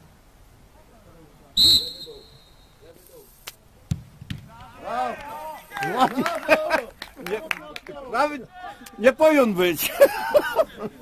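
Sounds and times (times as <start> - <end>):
referee's whistle blast: 1.6 - 2.8
ball kicked thud: 3.9 - 4.8.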